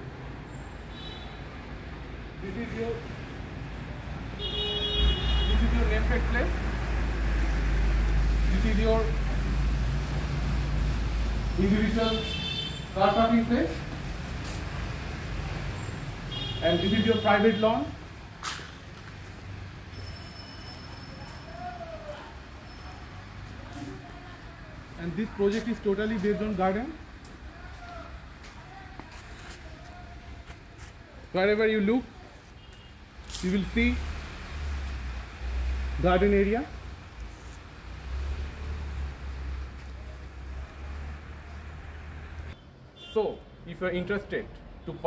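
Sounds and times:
low rumble of road traffic: 0.0s - 45.0s.

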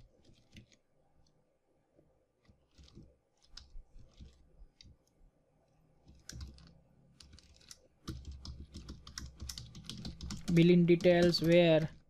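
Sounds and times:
computer keyboard typing: 6.1s - 12.0s.

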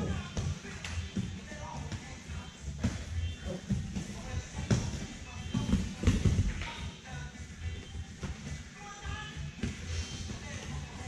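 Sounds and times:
background music with beat: 0.0s - 11.0s
bare feet on foam mats: 0.0s - 11.0s.

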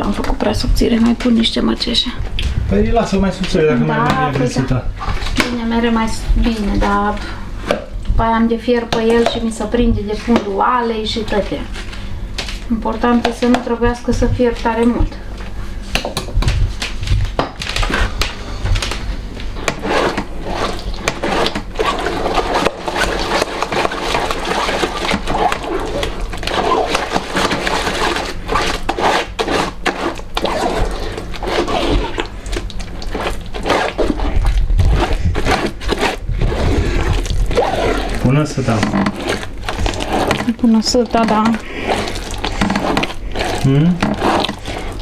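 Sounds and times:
pulp scraping and squelching through sieve: 3.8s - 7.7s, 17.2s - 45.0s
spoon scraping blender jar: 33.1s - 45.0s.

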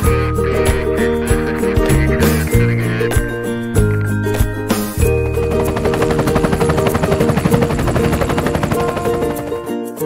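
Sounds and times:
background music: 0.0s - 10.0s
cartoon helicopter rotor chop: 5.3s - 9.9s.

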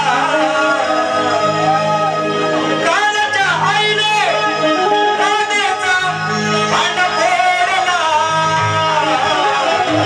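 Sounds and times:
instrumental accompaniment: 0.0s - 10.0s
person singing: 0.0s - 10.0s.

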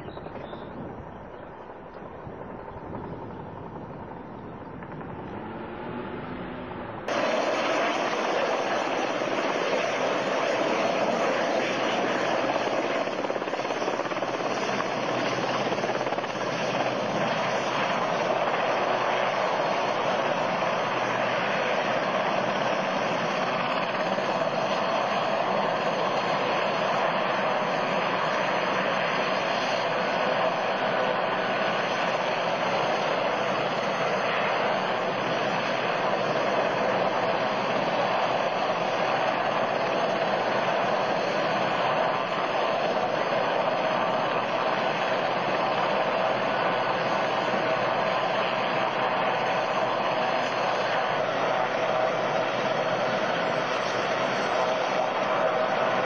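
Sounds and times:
helicopter rotor and engines: 0.0s - 56.0s.

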